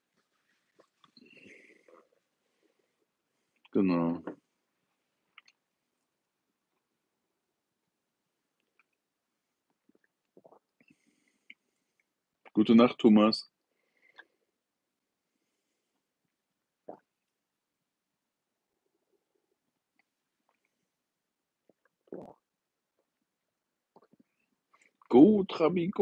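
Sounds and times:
faint mouth clicks: 5.3s - 5.6s
person swallowing: 9.9s - 10.8s, 16.8s - 17.2s, 21.6s - 22.5s.

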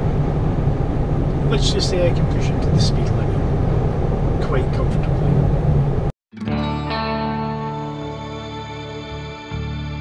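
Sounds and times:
car road and engine noise: 0.0s - 6.1s
soft instrumental music: 6.3s - 10.0s.

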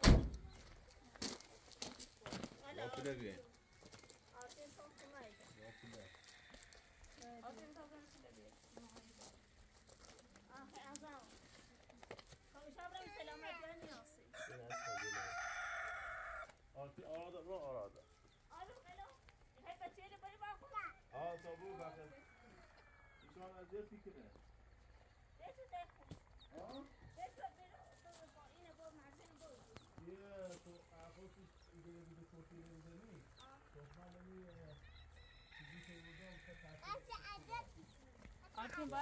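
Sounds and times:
rooster crowing: 5.0s - 7.2s, 14.3s - 16.6s, 21.4s - 23.4s, 34.8s - 37.4s.

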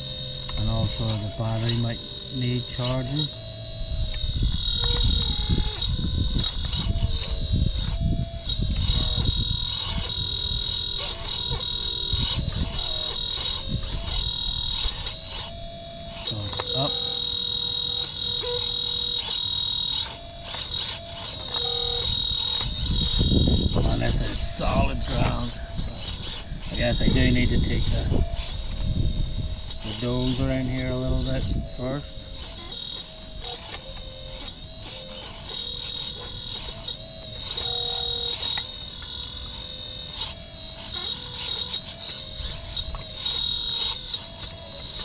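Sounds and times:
hydraulic pump whining: 0.0s - 45.0s.

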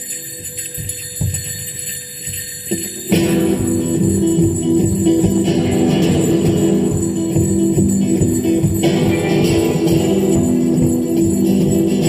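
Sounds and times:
rock band guitars and drums: 2.6s - 12.0s.

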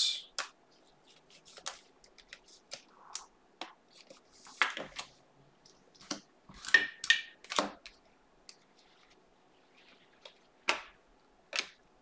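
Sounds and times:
trading cards swishing and clicking: 0.2s - 3.3s.

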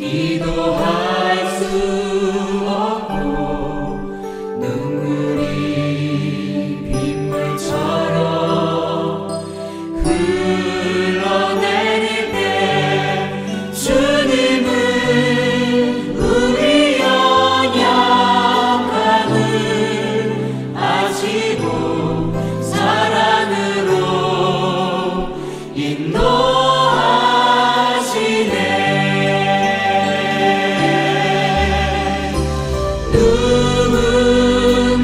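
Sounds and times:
person singing worship song: 0.0s - 35.0s
sustained steady accompaniment: 0.0s - 35.0s.

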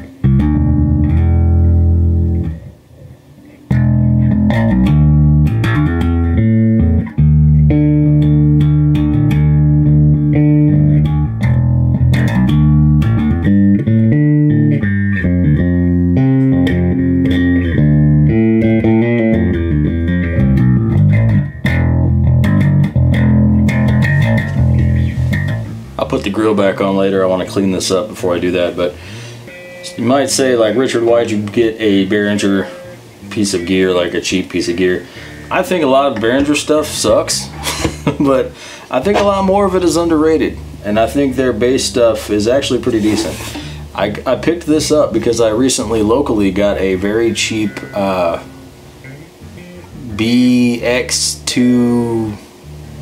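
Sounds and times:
electric bass notes: 0.0s - 53.0s.

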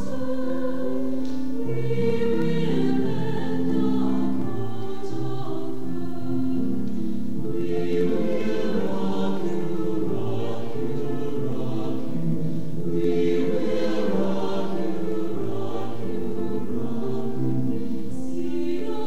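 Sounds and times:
choir singing held chords: 0.0s - 19.0s.

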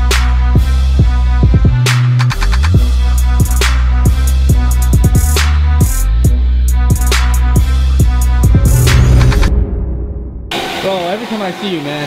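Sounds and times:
bass-heavy music: 0.0s - 10.6s
floor cleaning machine whirring: 10.5s - 12.0s.

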